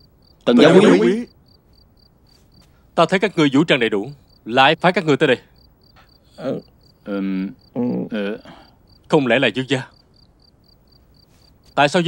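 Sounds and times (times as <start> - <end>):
crickets chirping: 0.0 - 12.0
person's voice: 0.5 - 1.3.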